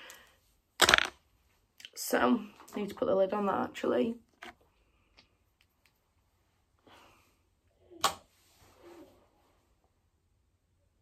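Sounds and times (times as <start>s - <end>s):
makeup items clattering together: 0.8s - 1.2s.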